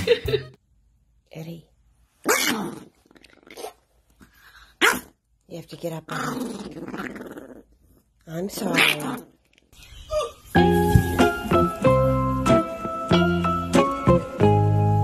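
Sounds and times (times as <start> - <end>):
small dog growling: 6.1 - 8.0.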